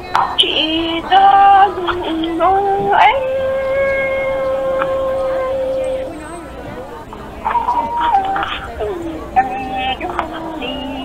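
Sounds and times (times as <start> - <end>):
person singing: 0.1 - 6.3, 7.5 - 11.0.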